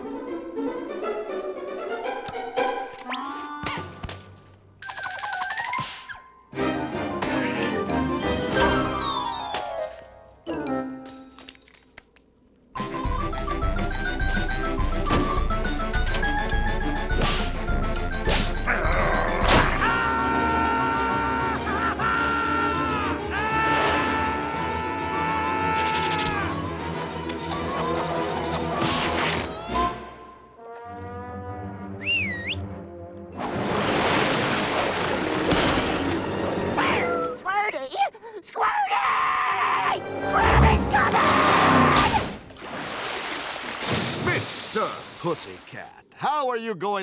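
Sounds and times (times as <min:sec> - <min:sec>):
orchestral cartoon music: 0:00.0 - 0:04.0, 0:05.0 - 0:11.4, 0:12.8 - 0:33.9, 0:34.8 - 0:37.6, 0:39.5 - 0:42.3
cartoon music: 0:06.6 - 0:09.7
cartoon cat yowling: 0:18.7 - 0:26.6, 0:38.6 - 0:42.2
character shouting: 0:36.8 - 0:42.3.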